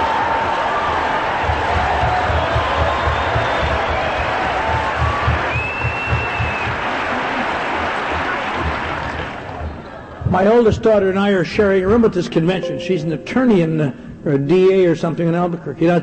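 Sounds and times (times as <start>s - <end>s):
audience applauding: 0.0s - 9.6s.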